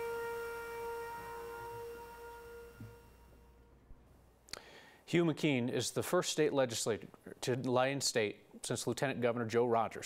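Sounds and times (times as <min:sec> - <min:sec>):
held musical note: 0:00.0 - 0:04.0.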